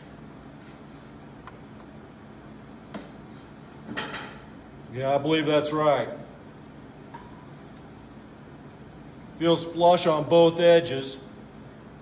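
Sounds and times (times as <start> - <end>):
low workshop hum: 0.0 - 12.0.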